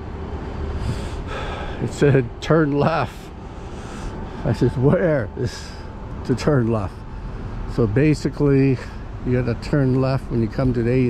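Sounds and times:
low background rumble: 0.0s - 11.0s
short breaths: 0.5s - 1.8s, 3.4s - 4.5s.

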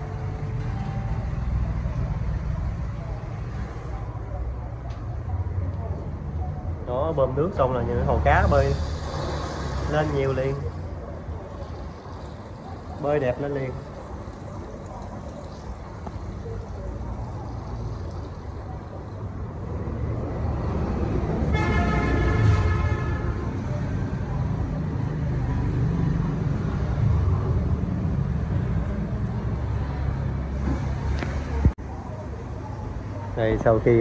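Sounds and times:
road traffic rumble: 0.0s - 34.0s
vehicle horn: 21.5s - 23.4s.

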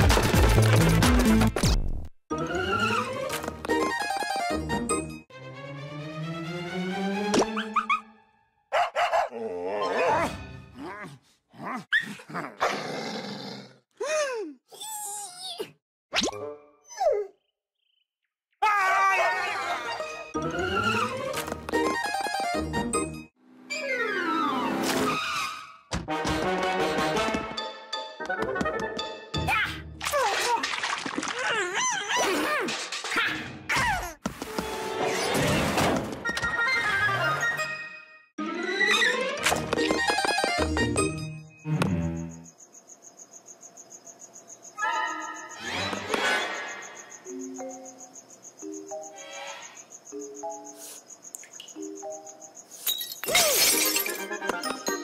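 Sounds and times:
cartoon dog growling and snarling: 9.2s - 14.0s.

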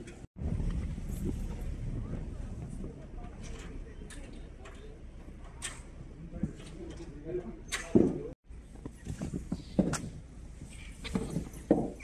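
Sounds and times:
wind rumble on microphone: 0.0s - 6.8s.

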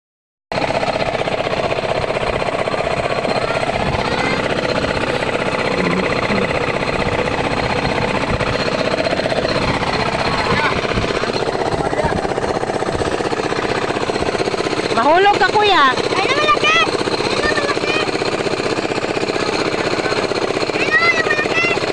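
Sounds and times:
boat diesel engine chugging: 0.5s - 21.9s
crew voices calling: 2.8s - 21.9s.

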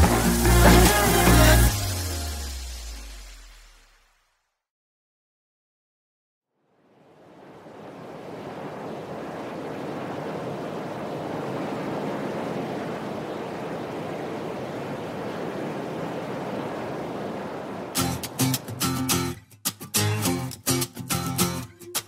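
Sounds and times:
steady rushing noise: 7.3s - 19.3s.

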